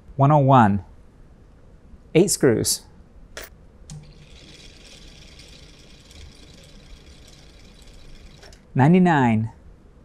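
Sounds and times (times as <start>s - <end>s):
small electric motor whirring: 4.0s - 8.7s.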